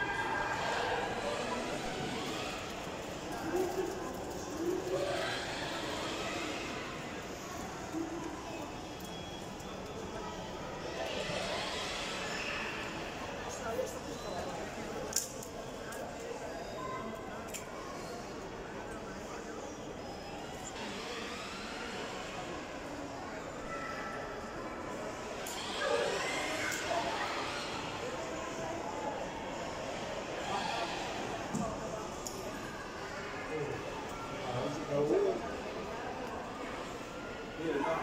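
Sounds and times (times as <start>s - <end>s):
steady hall hum: 0.0s - 38.0s.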